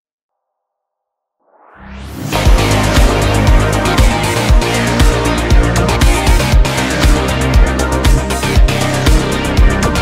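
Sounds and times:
synthwave music: 1.8s - 10.0s.

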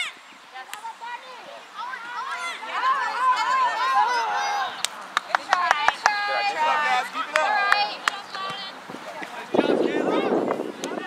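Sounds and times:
players and spectators shouting: 1.0s - 4.8s, 5.7s - 11.0s.

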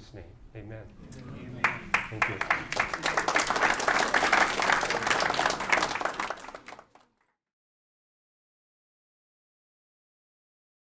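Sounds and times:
audience applauding: 1.3s - 7.2s.

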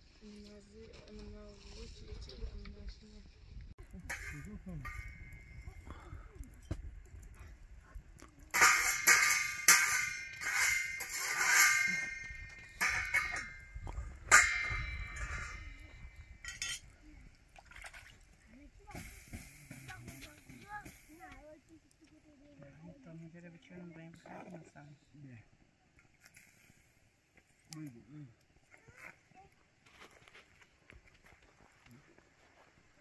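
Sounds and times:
metal spatula clanking on griddle: 4.0s - 5.6s, 8.5s - 16.8s.

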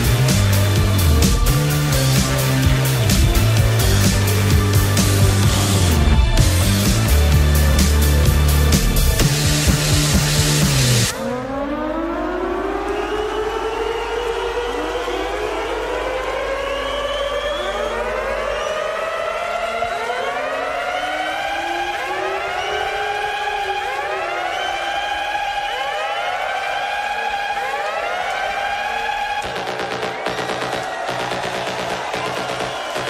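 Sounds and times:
siren wails: 9.4s - 33.0s.

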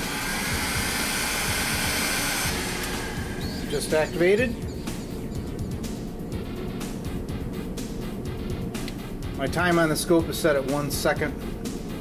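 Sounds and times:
heat gun blowing air: 0.0s - 3.4s.

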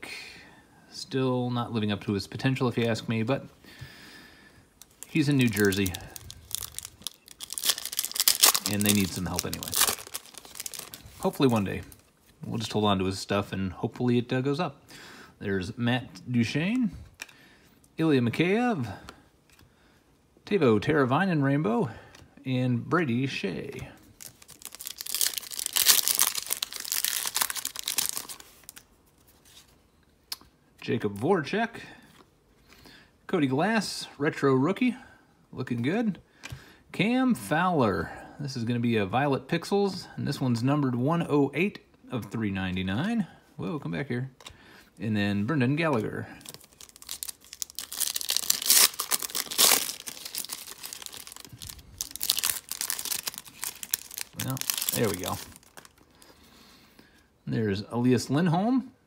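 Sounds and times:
wrapper tearing and crinkling: 4.8s - 11.6s, 24.2s - 28.9s, 46.4s - 56.0s.

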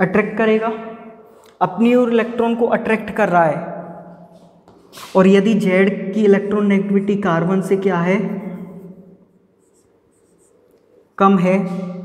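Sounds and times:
marker pen writing on whiteboard: 7.6s - 12.0s.

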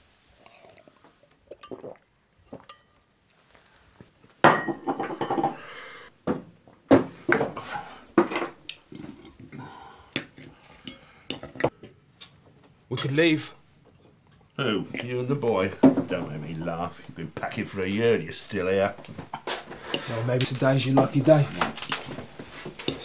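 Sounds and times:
dishes and cutlery clinking: 4.5s - 5.6s, 19.3s - 23.0s.

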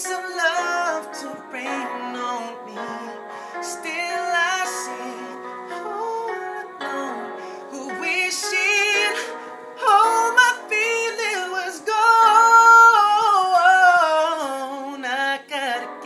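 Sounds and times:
man singing ballad: 0.0s - 16.0s.

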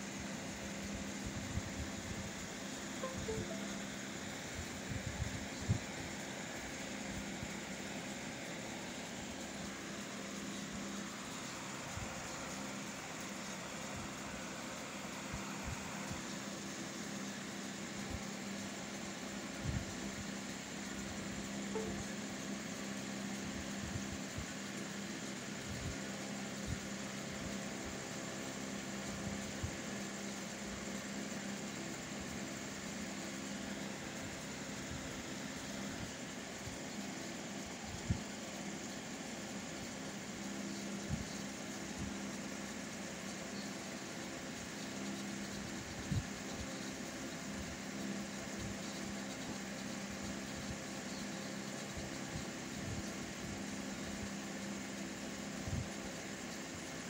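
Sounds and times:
low mechanical hum: 0.0s - 57.0s.

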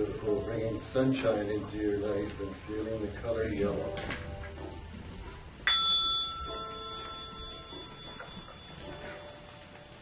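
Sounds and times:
bell ringing: 5.6s - 10.0s.

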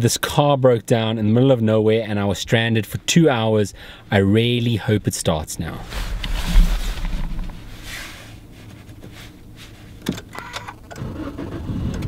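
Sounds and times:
low rumble in car cabin: 0.0s - 12.0s
handling rustle: 5.8s - 10.0s.

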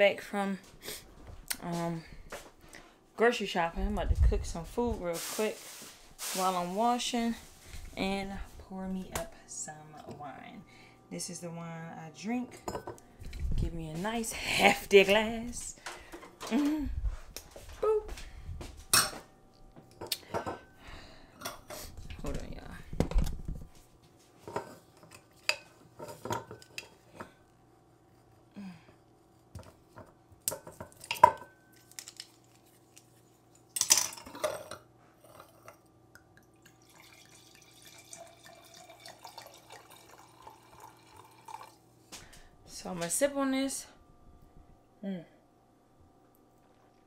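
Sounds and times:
wine pouring into glass: 36.4s - 41.8s.

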